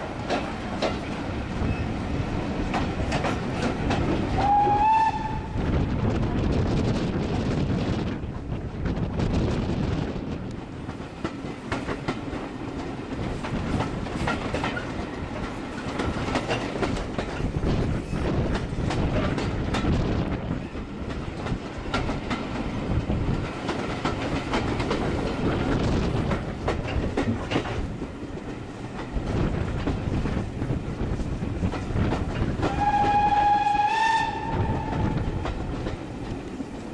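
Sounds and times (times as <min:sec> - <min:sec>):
train wheels clattering over rails: 0:00.0 - 0:36.9
wind rush: 0:00.0 - 0:36.9
locomotive whistle: 0:04.4 - 0:05.6, 0:32.6 - 0:35.3.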